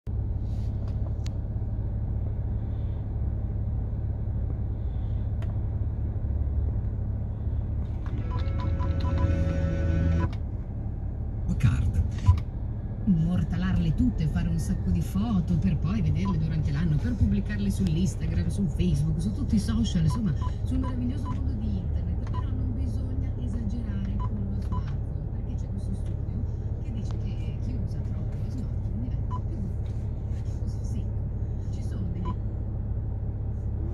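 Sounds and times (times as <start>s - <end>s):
car engine idling: 0.1s - 33.9s
low steady hum: 0.1s - 33.9s
tones and short beeps: 8.2s - 10.3s.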